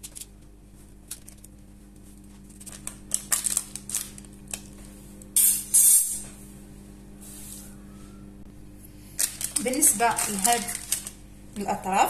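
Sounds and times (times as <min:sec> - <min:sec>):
metal spatula scraping baking paper: 0:09.5 - 0:11.1.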